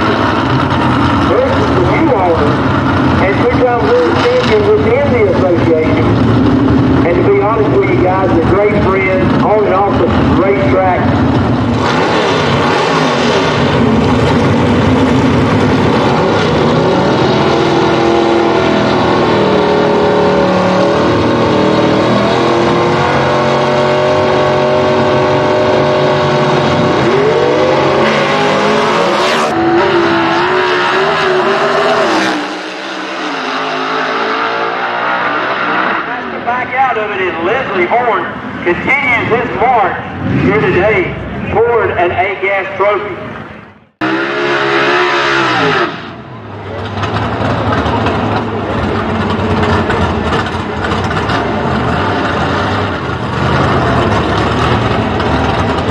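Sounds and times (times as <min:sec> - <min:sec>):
drag car engines revving: 0:00.0 - 0:55.9.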